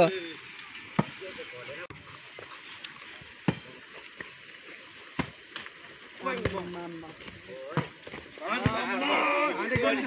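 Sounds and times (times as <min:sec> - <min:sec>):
men shouting: 0:08.4 - 0:10.0.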